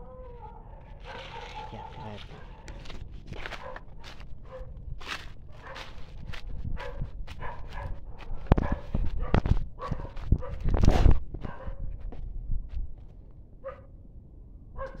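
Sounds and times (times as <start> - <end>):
dog barking: 0.0 - 4.8, 5.5 - 6.0, 6.7 - 10.7, 11.4 - 11.8, 13.6 - 13.9, 14.8 - 15.0
rustling through dry undergrowth: 0.1 - 12.2
heavy thumps in undergrowth: 1.1 - 4.2.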